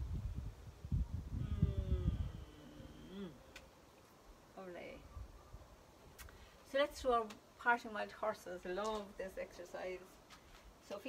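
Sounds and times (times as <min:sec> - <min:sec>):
wind buffeting microphone: 0:00.0 - 0:03.2
person humming: 0:01.3 - 0:03.6.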